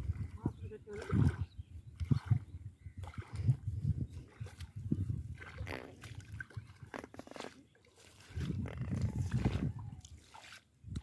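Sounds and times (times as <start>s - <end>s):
water sloshing while wading: 0.0s - 11.0s.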